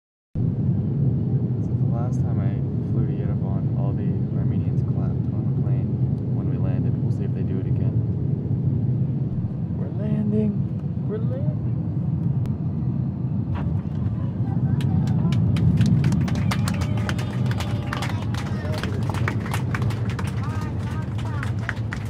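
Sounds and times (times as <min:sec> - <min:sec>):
airliner cabin engine rumble: 0:00.4 - 0:22.0.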